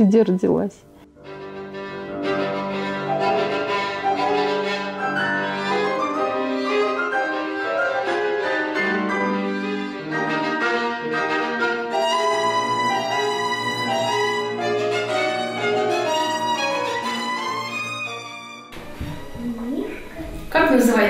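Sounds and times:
lower accompaniment: 0.0s - 21.0s
slow violin melody: 1.0s - 20.1s.

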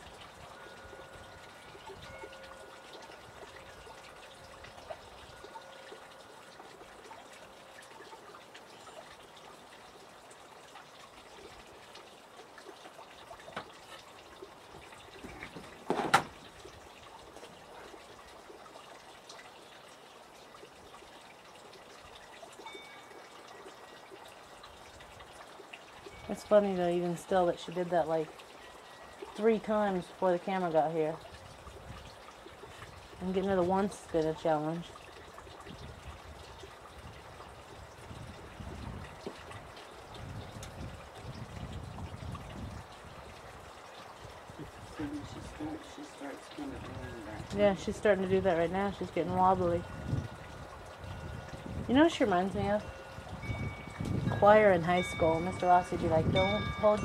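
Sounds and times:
trickling water: 0.0s - 57.0s.

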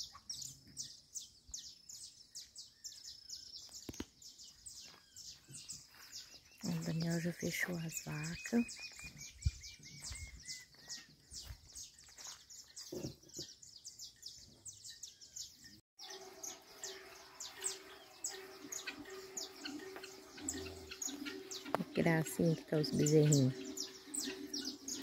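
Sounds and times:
small birds chirping: 0.0s - 25.0s.

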